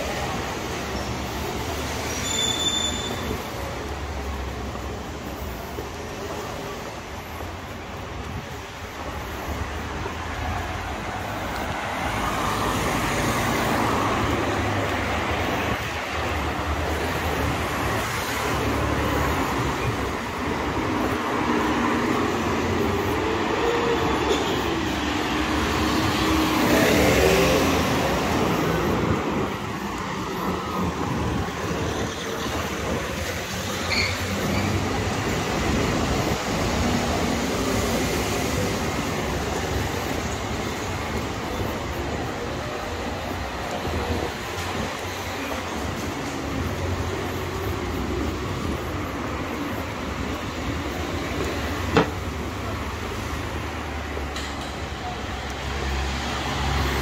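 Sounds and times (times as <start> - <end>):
vehicles passing on road: 0.0 - 57.0.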